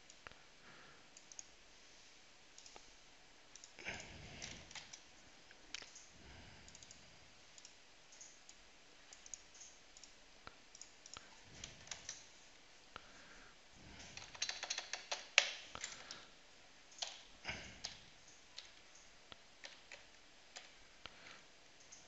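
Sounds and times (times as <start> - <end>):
computer keyboard typing: 3.6 - 5.1, 5.7 - 7.0, 7.6 - 12.3, 13.9 - 16.3, 16.9 - 22.0.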